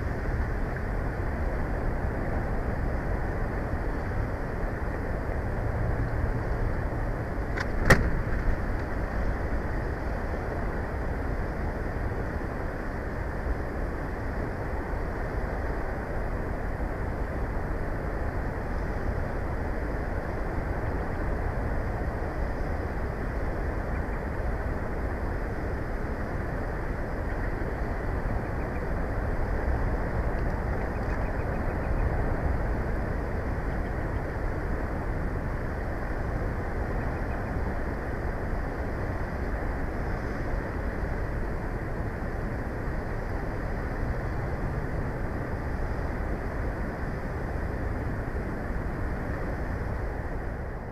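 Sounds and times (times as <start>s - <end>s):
wind rush on microphone: 0.0s - 50.9s
sharp click: 7.5s - 8.2s.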